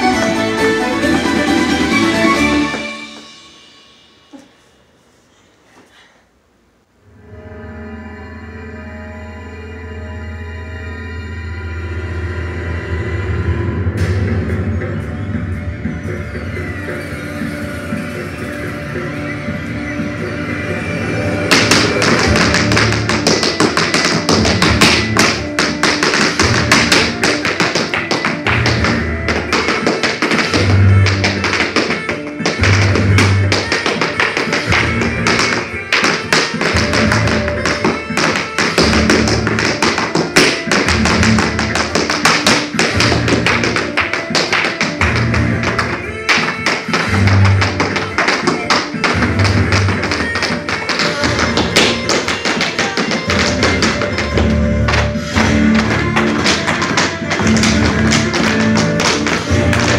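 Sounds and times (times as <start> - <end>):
hard shoes tapping on floor: 21.5 - 59.9.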